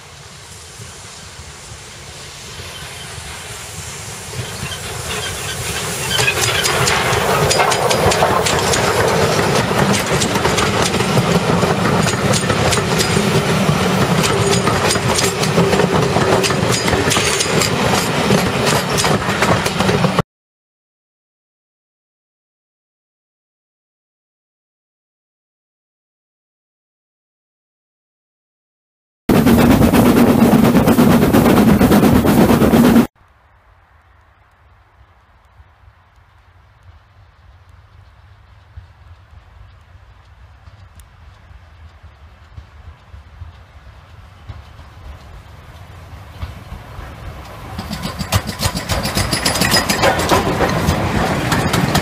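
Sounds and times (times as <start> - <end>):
steam locomotive rush of steam: 0.0 - 20.2, 29.3 - 33.2, 34.4 - 52.0
train wheels rumbling on rails: 0.0 - 20.2, 29.3 - 33.1, 34.2 - 52.0
rail clicks and clacks: 2.5 - 20.2, 29.3 - 33.1, 36.8 - 52.0.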